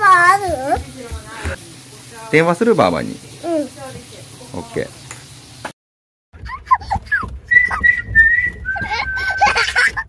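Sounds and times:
child chattering and laughing: 0.0s - 0.9s, 3.4s - 3.9s, 6.4s - 7.8s, 8.8s - 10.0s.

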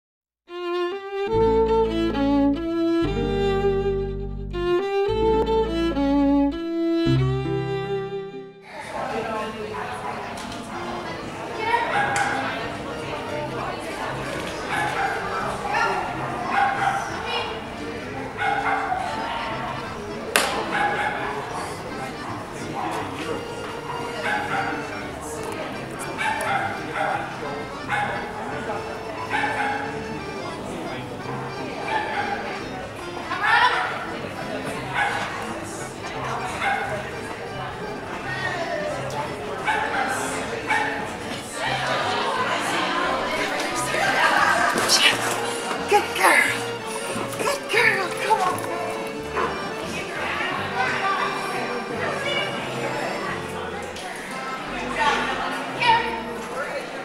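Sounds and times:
dog barking: 11.8s - 12.5s, 14.7s - 17.2s, 18.3s - 19.2s, 20.6s - 21.4s, 23.9s - 24.9s, 26.1s - 28.4s, 29.2s - 30.0s, 31.8s - 32.4s, 34.9s - 35.3s, 36.5s - 37.0s, 39.6s - 41.1s
person speaking: 44.8s - 48.7s.

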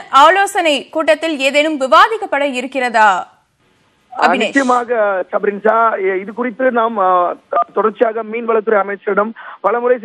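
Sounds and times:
person speaking over a telephone: 4.2s - 4.8s.

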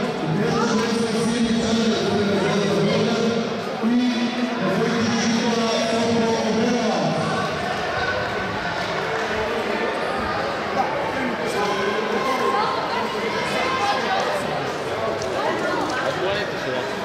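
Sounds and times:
people talking in echoing hall: 0.0s - 17.0s.

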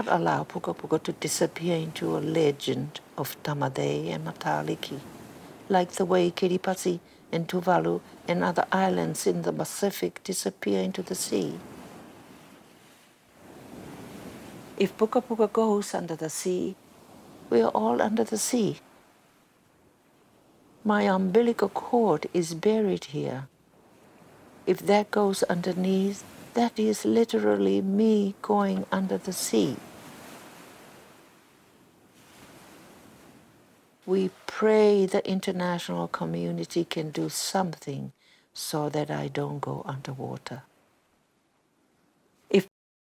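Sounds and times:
faint ocean waves: 0.0s - 42.7s.

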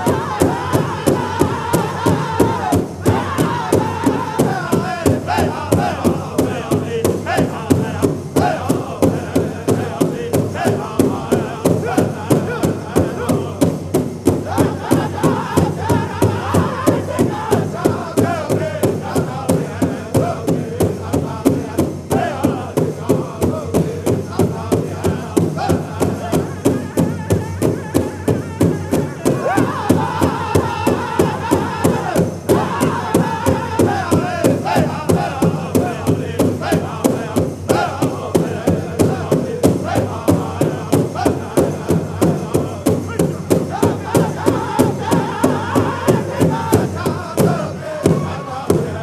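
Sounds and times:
big drum beating: 0.0s - 49.0s
singers in unison: 0.0s - 49.0s.

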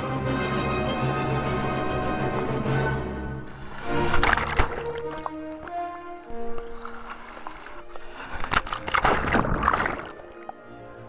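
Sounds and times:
background music: 0.0s - 11.0s
water splashing in pool: 3.5s - 10.6s.

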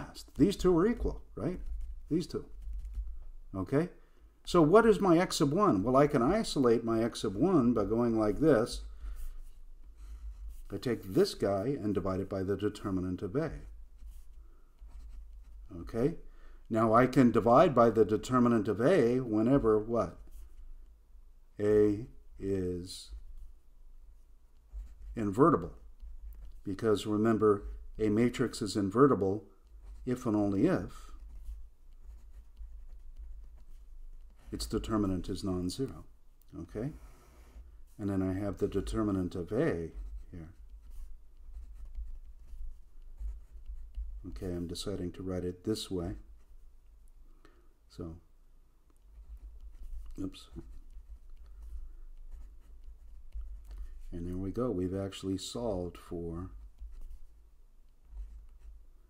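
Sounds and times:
low steady hum: 0.0s - 59.0s
pen scratching on paper: 0.4s - 3.2s, 7.2s - 16.2s, 19.2s - 20.7s, 24.2s - 36.1s, 36.8s - 44.9s, 46.0s - 46.7s, 49.0s - 54.7s, 56.4s - 59.0s.

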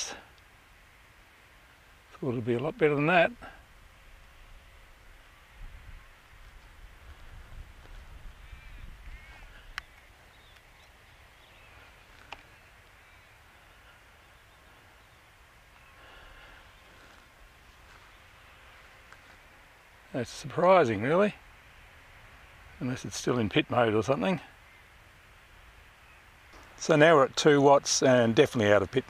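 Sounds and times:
faint bird calls: 3.1s - 26.8s.

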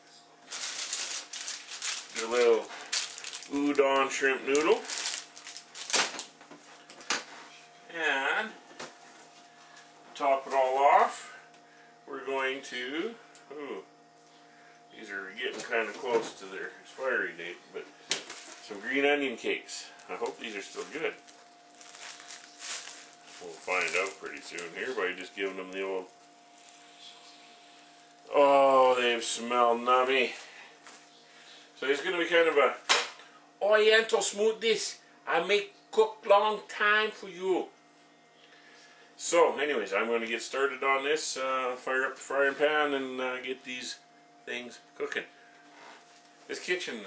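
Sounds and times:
faint appliance hum: 0.0s - 47.0s
food packages clicking and knocking: 0.5s - 6.3s, 21.8s - 25.0s.

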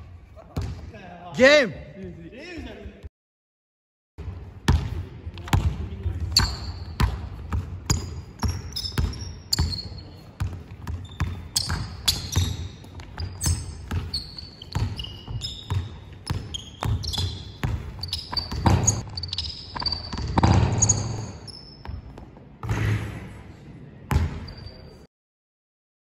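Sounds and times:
basketball bouncing on hardwood: 4.7s - 9.7s, 10.4s - 14.1s, 14.7s - 19.0s
sneaker squeaks: 6.2s - 23.3s, 24.1s - 25.1s.

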